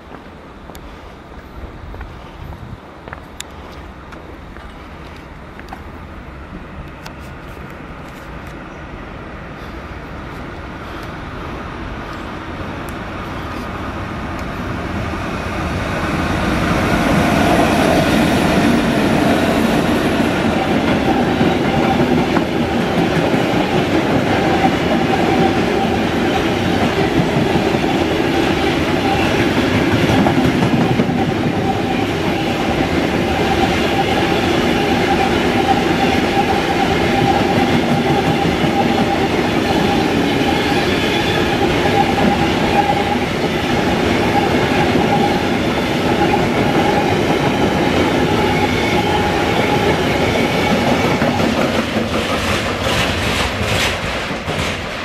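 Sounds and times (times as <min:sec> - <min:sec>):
freight train wheels rumbling: 0:00.0 - 0:55.0.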